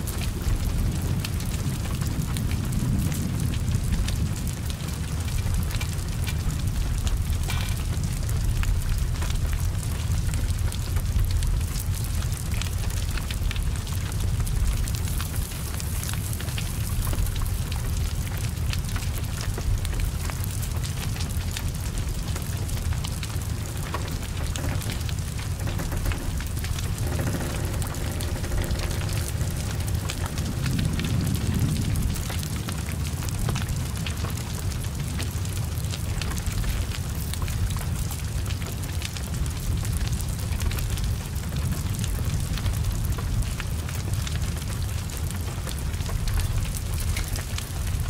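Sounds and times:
fire crackling and popping: 0.0s - 48.0s
fire rumbling: 0.0s - 48.0s
heavy rain: 0.0s - 48.0s.

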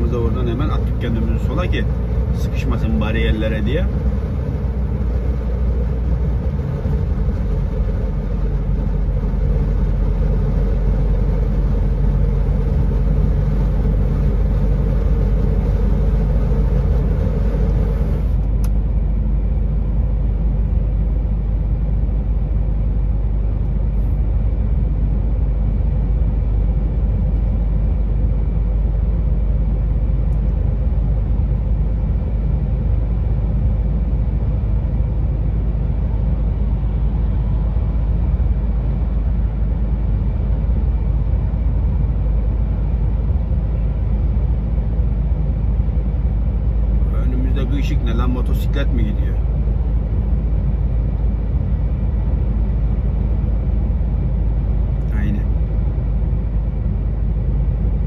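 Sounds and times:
higher hum: 0.0s - 26.0s
vehicle engine and road drone: 0.0s - 58.0s.

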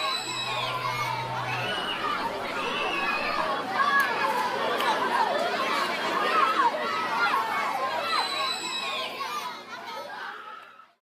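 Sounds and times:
children chattering and calling: 0.0s - 11.0s.

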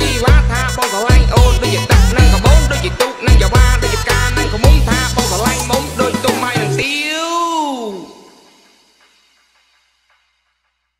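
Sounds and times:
voice holding a sung note: 0.0s - 8.4s
backing music: 0.0s - 10.2s.

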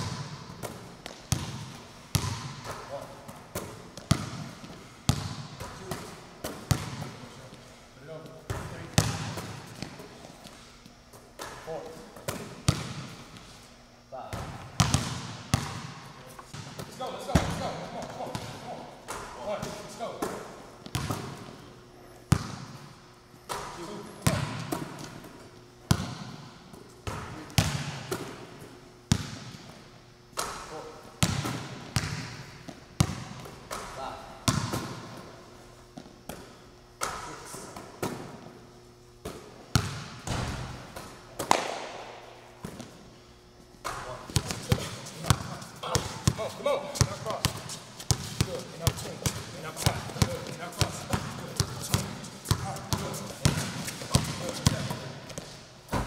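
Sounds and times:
basketball bouncing on gym floor: 0.0s - 7.4s, 8.2s - 10.0s, 11.4s - 13.3s, 14.3s - 21.6s, 22.3s - 22.9s, 23.5s - 29.8s, 30.4s - 35.4s, 36.0s - 38.6s, 39.2s - 43.0s, 43.8s - 56.0s.

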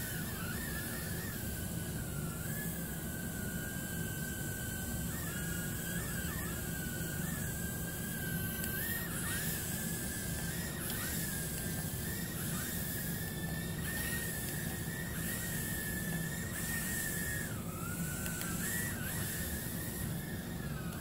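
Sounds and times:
drone propellers whining: 0.0s - 21.0s.

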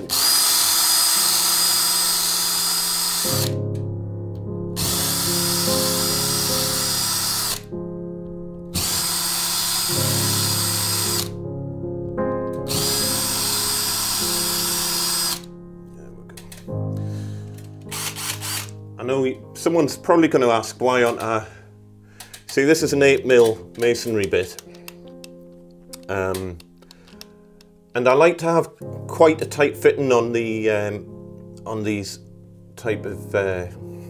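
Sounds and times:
cordless drill whining: 0.0s - 3.6s, 4.8s - 7.7s, 8.8s - 11.4s, 12.7s - 15.5s, 17.9s - 18.7s
background music: 0.0s - 34.0s.

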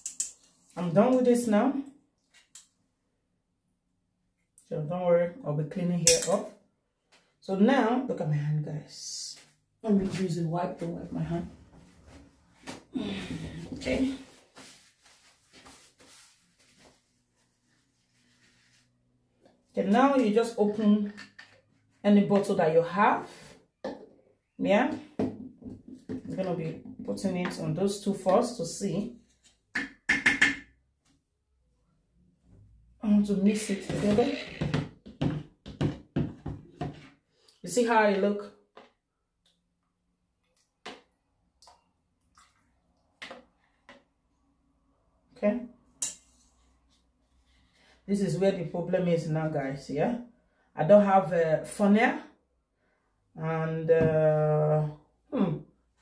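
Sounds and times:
hands wiped with wet wipe: 14.2s - 18.9s.

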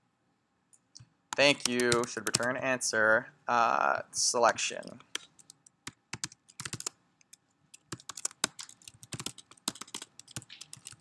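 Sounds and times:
computer keyboard typing: 1.4s - 2.6s, 4.8s - 11.0s.

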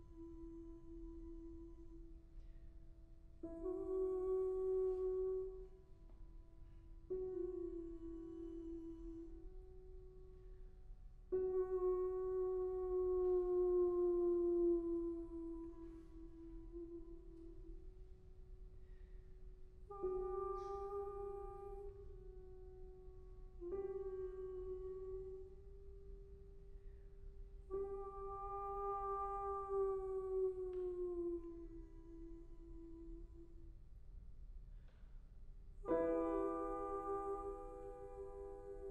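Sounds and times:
soprano singing long note: 3.4s - 5.9s, 7.1s - 10.0s, 11.3s - 18.0s, 19.9s - 26.1s, 27.6s - 33.6s, 35.9s - 38.9s.

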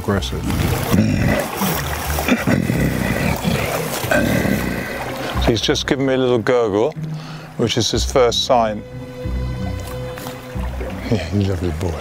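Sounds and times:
gorilla gurgling rumble: 0.4s - 5.4s.

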